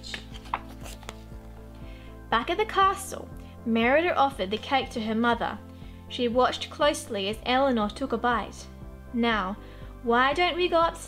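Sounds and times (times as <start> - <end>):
paper rustling with light taps: 0.0 - 1.6
book page turning: 0.0 - 1.7
quiet background music: 0.0 - 11.0.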